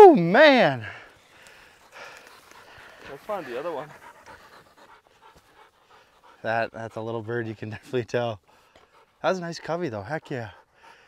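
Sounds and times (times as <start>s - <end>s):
dog panting faintly: 0.8s - 11.0s.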